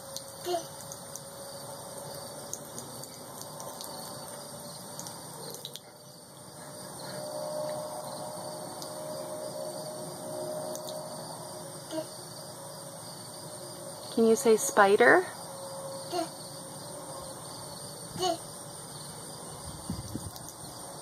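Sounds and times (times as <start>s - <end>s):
hose water trickling on concrete: 0.0s - 6.8s
faint steady tone: 0.0s - 18.0s
insects chirring: 0.0s - 21.0s.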